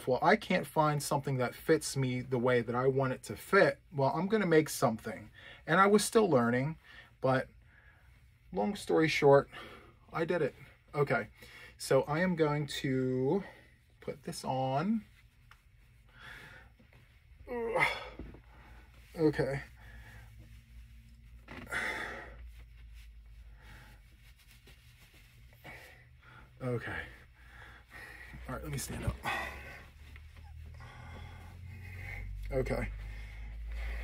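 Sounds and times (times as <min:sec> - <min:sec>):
low room hum: 0:00.0 - 0:34.0
breathy rustle of cloth: 0:06.8 - 0:34.0
man sighing: 0:17.5 - 0:18.4
man breathing out: 0:21.6 - 0:22.5.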